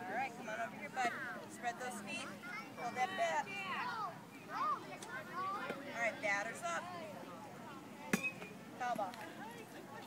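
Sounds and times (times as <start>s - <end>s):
bat striking ball clink: 8.1s - 8.5s.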